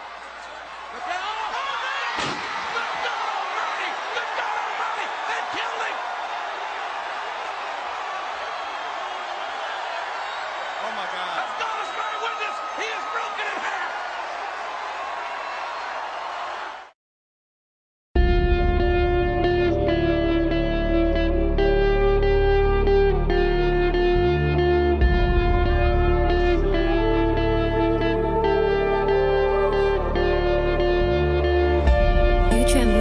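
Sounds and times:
crowd shouting and cheering: 0.0s - 17.0s
sharp slam: 2.2s - 2.7s.

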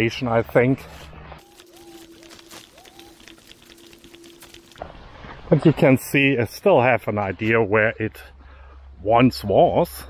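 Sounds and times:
footsteps on grassy path: 0.9s - 5.5s.

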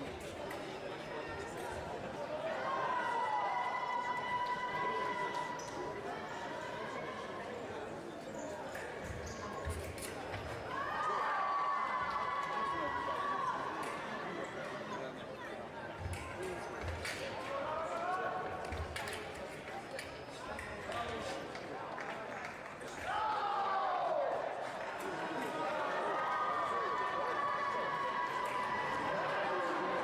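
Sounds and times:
voices in a hall: 0.0s - 30.0s.

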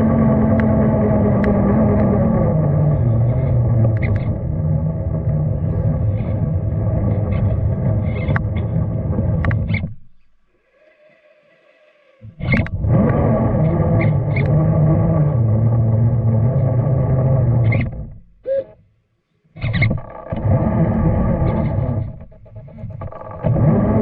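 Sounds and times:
electric motor whining: 0.0s - 9.8s, 12.3s - 18.2s, 20.0s - 22.3s, 23.1s - 24.0s.

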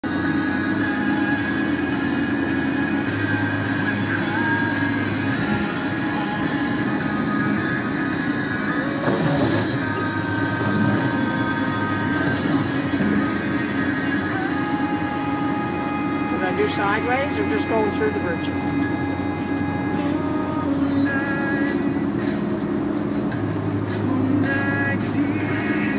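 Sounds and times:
car road and engine noise: 0.0s - 25.9s.

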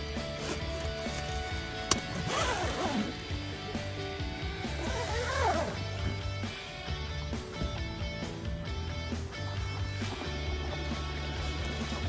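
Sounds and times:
background music: 0.0s - 12.0s
tent zipper being pulled: 0.2s - 3.4s, 4.7s - 6.0s.

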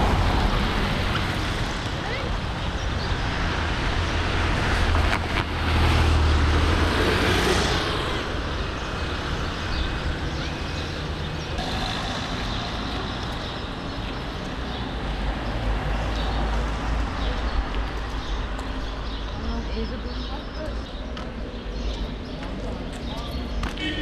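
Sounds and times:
street traffic passing: 0.0s - 24.0s.

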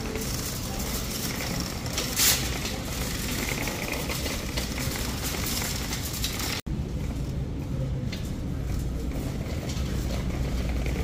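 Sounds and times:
shopping cart rattling on concrete: 0.0s - 7.2s, 8.4s - 11.0s.

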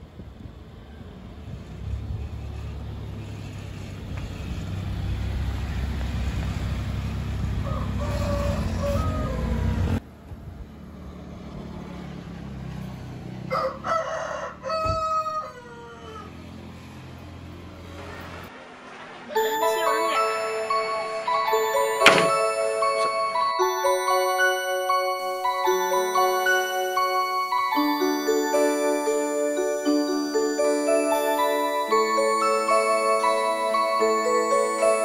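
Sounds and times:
rooster crowing: 7.6s - 9.8s, 13.5s - 16.5s.

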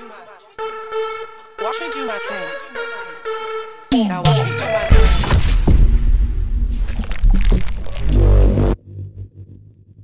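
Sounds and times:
deep bass chord: 4.9s - 10.0s.

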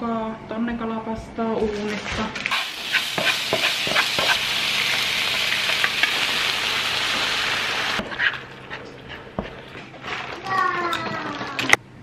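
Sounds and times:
onion sizzling in a frying pan: 2.5s - 8.8s.

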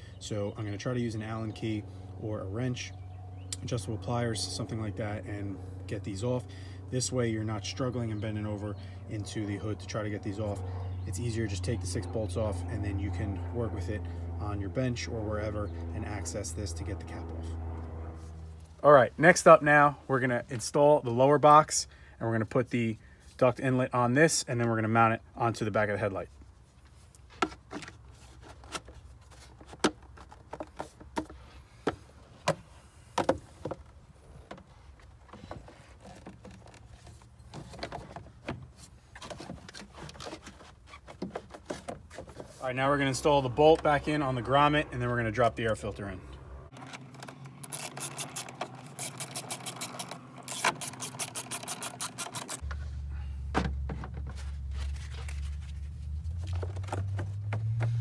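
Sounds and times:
hand tool clicking: 47.6s - 52.6s.

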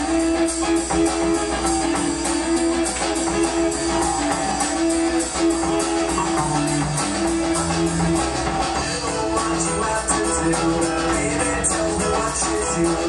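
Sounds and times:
drums: 0.0s - 13.0s
electric and acoustic guitars: 0.0s - 13.0s
rock band playing: 0.0s - 13.0s.

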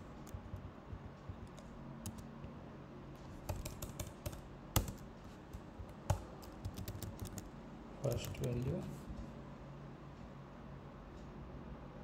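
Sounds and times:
computer keyboard typing: 0.0s - 2.3s, 3.3s - 8.8s.

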